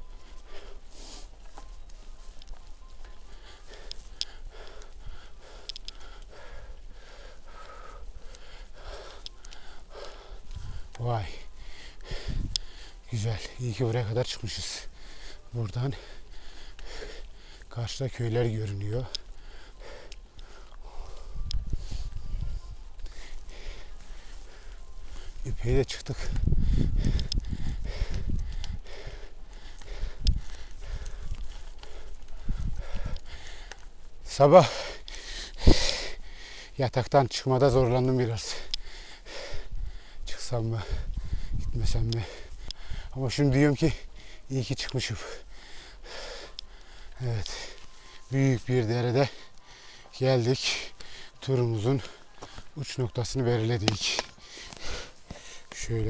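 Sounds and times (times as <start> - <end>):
cyclist breathing hard: 0.0 - 56.0
wind rumbling on microphone: 1.7 - 17.4, 18.1 - 34.3, 38.6 - 44.4.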